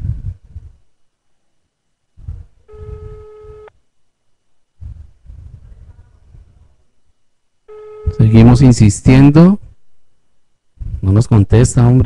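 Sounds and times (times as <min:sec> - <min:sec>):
telephone ringback tone: 0:02.7 - 0:03.7, 0:07.7 - 0:08.6.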